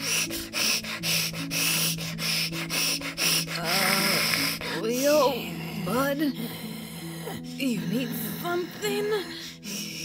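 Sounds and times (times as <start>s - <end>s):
person hissing: 0.0s - 4.8s.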